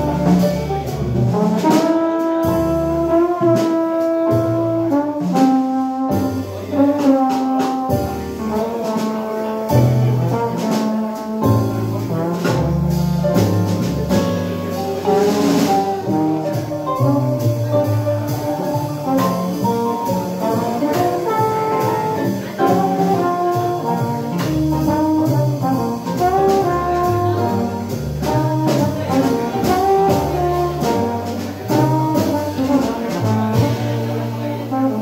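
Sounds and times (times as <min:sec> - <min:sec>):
drum kit cymbals: 0:00.0 - 0:35.0
piano: 0:00.0 - 0:35.0
trombone melody: 0:00.0 - 0:35.0
upright bass: 0:00.0 - 0:35.0.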